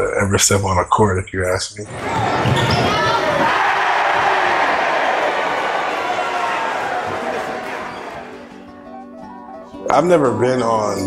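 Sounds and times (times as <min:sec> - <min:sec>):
crowd noise in gymnasium: 0:01.9 - 0:08.7
sneaker squeaks on hardwood: 0:02.1 - 0:03.4.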